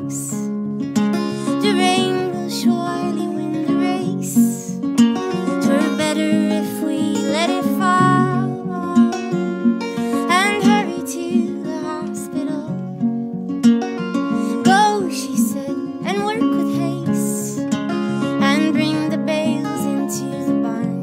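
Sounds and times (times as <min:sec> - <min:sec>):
guitars: 0:00.0 - 0:21.0
woman singing folk song: 0:00.0 - 0:21.0.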